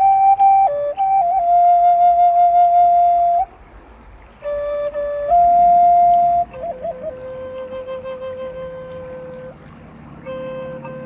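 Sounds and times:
flute holding a long note: 0.0s - 3.6s, 4.3s - 11.0s.

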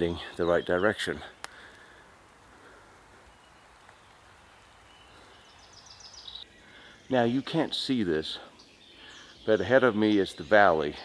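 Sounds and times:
bird chirping: 0.0s - 1.9s, 2.7s - 11.0s
woodland ambience: 0.0s - 11.0s.

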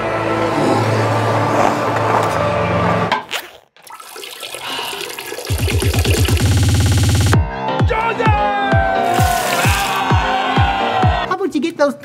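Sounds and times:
trailer music with low tones: 0.0s - 3.1s, 5.6s - 11.3s
toilet flushing: 3.9s - 7.0s.

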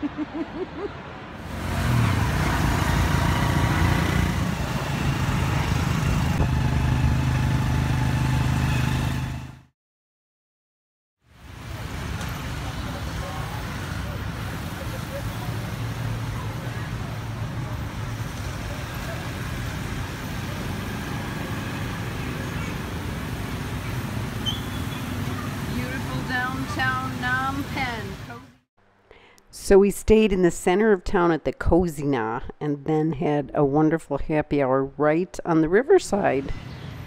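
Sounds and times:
motorbikes passing: 0.0s - 9.7s, 11.4s - 28.6s
street traffic hum: 0.0s - 9.7s, 11.3s - 29.0s, 36.0s - 37.0s
motorbike engine running: 2.2s - 9.7s.

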